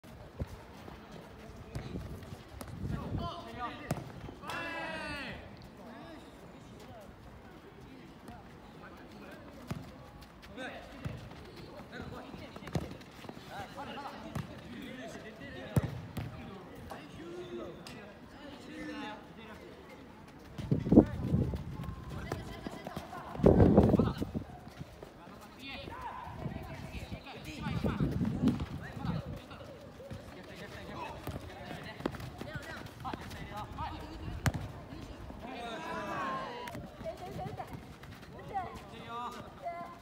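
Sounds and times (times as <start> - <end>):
players calling and shouting: 0.4 - 40.0
soccer ball kicked: 1.7 - 3.1, 3.7 - 4.7, 12.0 - 13.4, 14.2 - 14.8, 15.6 - 16.5, 20.6 - 24.7, 27.6 - 35.2
ball kicked with thuds: 34.2 - 34.8.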